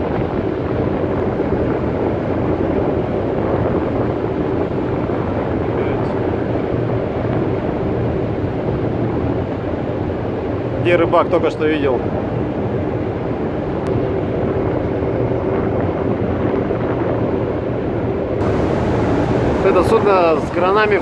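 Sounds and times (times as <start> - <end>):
ship engine low hum: 0.0 - 21.0.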